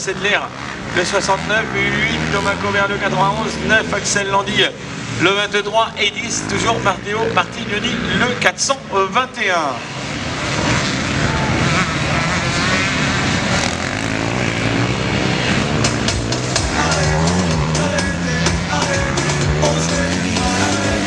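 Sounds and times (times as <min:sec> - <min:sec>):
motocross bikes revving past: 0:00.0 - 0:21.0.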